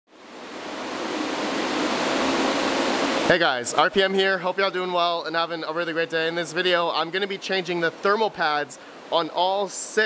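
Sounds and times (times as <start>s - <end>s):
cooling fans rushing hiss: 0.1s - 10.0s.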